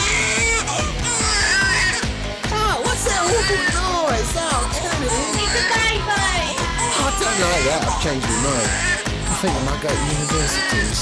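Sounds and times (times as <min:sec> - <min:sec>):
baby crying: 0:00.0 - 0:11.0
pop song with steady beat: 0:01.2 - 0:11.0.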